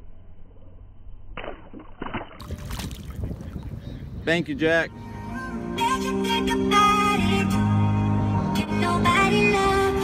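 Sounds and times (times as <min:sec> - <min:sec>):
water splashing and sloshing: 0:01.4 - 0:03.8
wind rumbling on microphone: 0:02.4 - 0:04.9.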